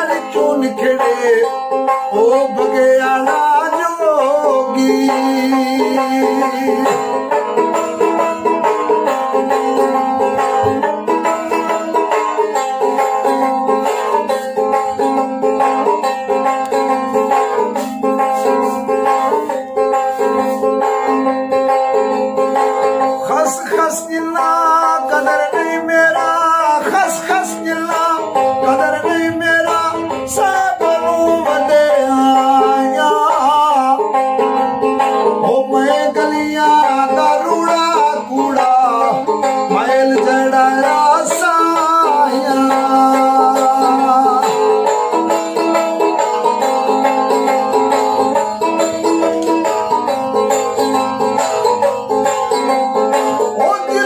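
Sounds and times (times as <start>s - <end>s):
man singing: 0.0s - 16.0s, 22.8s - 46.3s, 53.2s - 54.0s
plucked one-stringed instrument: 0.0s - 54.0s.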